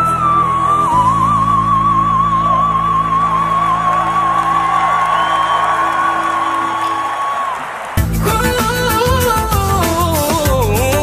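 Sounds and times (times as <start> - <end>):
man singing high note with vibrato: 8.1 - 11.0.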